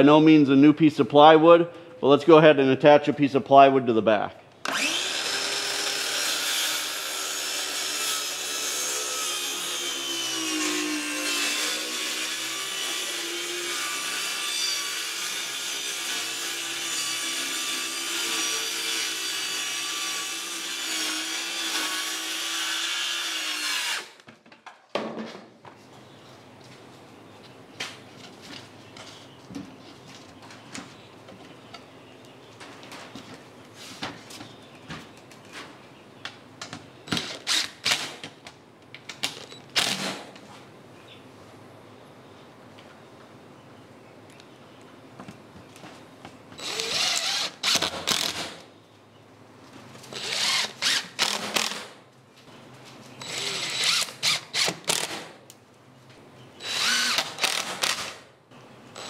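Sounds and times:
circular saw cutting plywood: 0:04.7 - 0:24.1.

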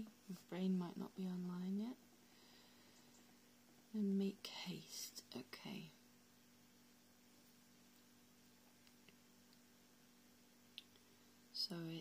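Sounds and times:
faint steady hum: 0:00.0 - 0:12.0
woman whispering: 0:04.0 - 0:06.0, 0:11.6 - 0:12.0.

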